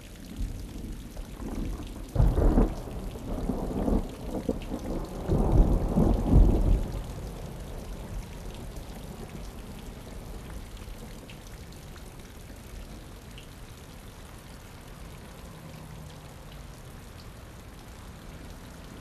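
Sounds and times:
steady rain: 0.0 - 19.0
thunder rumbling: 1.5 - 9.2.

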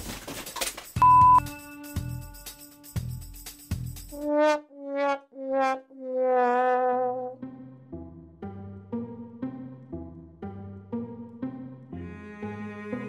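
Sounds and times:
plucked string and bass music: 1.0 - 4.2, 7.1 - 13.0.

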